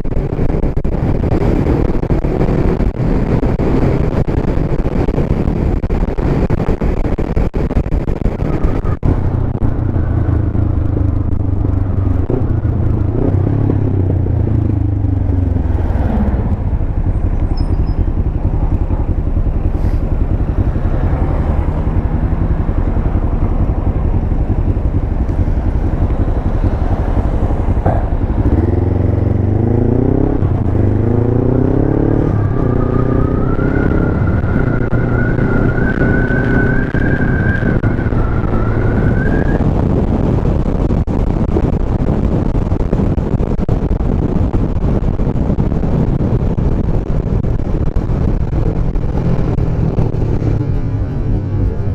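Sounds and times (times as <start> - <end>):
motorcycle engine: 0.0 - 51.9.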